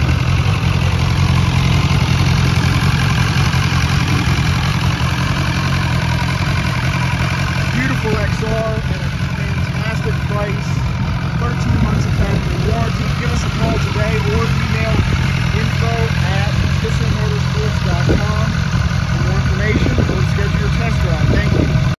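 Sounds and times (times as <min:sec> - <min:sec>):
motorcycle engine idling: 0:00.0 - 0:22.0.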